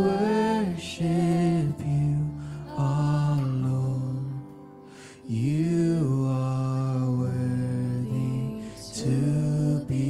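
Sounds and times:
person singing long held note: 0.0s - 4.6s, 5.2s - 10.0s.

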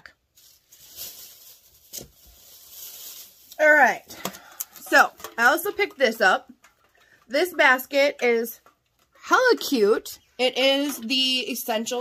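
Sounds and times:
rustling of objects handled: 0.0s - 7.6s.

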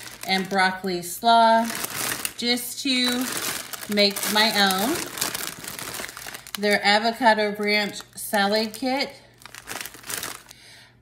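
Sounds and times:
plastic bag crinkling: 0.0s - 10.7s.

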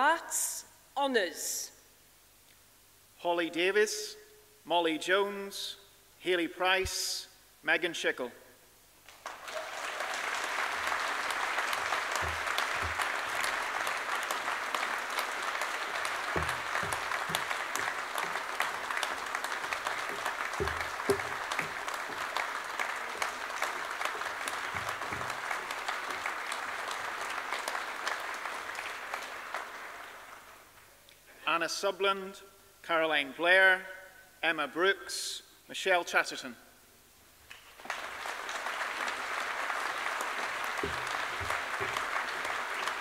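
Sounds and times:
audience applauding in a hall: 9.0s - 30.9s, 37.5s - 43.0s
dull knocks: 11.8s - 13.6s, 16.3s - 19.1s, 19.7s - 22.4s, 24.1s - 26.2s, 40.8s - 42.1s.

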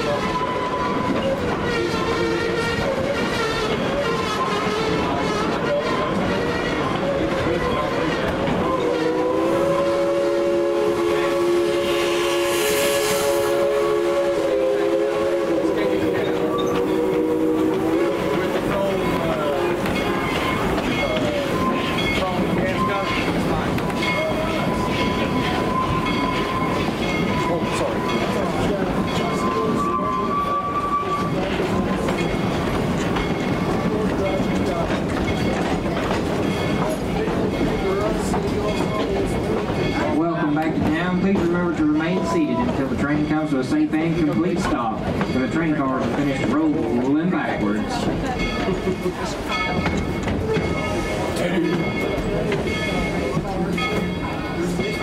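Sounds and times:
steam locomotive chime whistle: 0.0s - 35.7s, 36.5s - 55.0s
train rumbling and clattering: 0.0s - 55.0s.

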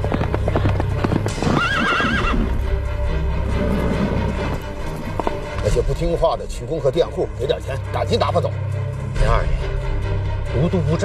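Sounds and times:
horse hoofbeats galloping: 0.0s - 2.7s, 3.5s - 5.8s
horse whinny: 1.3s - 2.6s.

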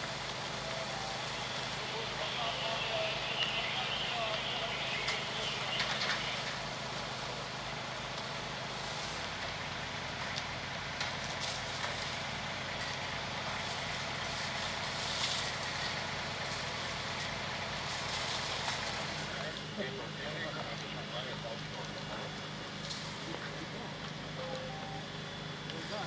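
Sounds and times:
fire crackling: 0.0s - 26.0s
fire engine running: 0.0s - 26.0s.

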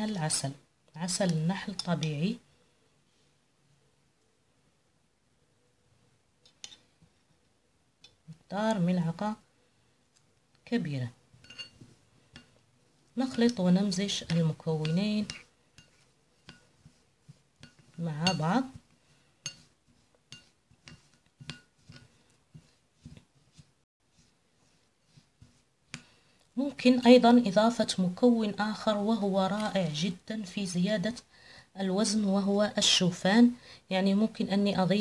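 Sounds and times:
metal spoon clinking on glass bowl: 11.4s - 11.8s, 17.6s - 18.6s, 19.4s - 19.7s.

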